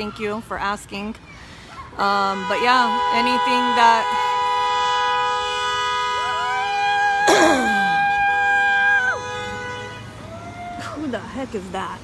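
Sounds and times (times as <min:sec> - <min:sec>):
vehicle horns blaring: 0:02.1 - 0:10.3.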